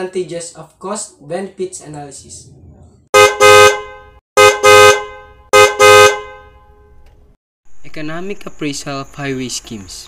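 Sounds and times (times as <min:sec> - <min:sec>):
car horn double beeps: 0:03.2 - 0:07.0.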